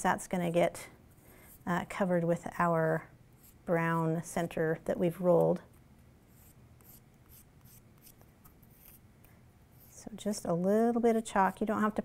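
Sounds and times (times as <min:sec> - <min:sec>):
chalk rubbing on card: 0:03.4 - 0:03.7, 0:06.3 - 0:09.0.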